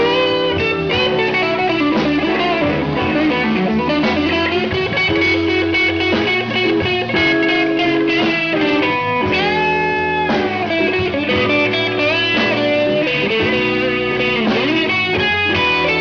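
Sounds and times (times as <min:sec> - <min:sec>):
electric guitar bending notes: 0:00.0 - 0:16.0
live blues band playing: 0:00.0 - 0:16.0.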